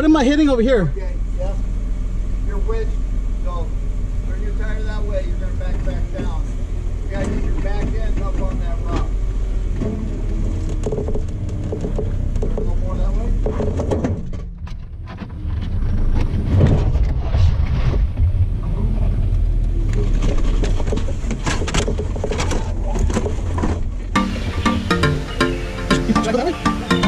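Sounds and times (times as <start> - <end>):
engine running low: 0.0 - 27.0
tires knocking on rock: 5.5 - 27.0.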